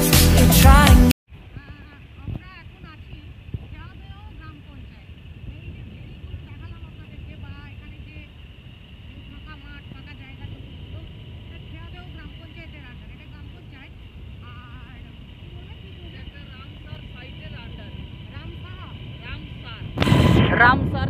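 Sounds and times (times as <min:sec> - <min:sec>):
wind rumble: 0:01.3 - 0:21.0
motorcycle running: 0:01.4 - 0:21.0
thin high steady tone: 0:01.5 - 0:21.0.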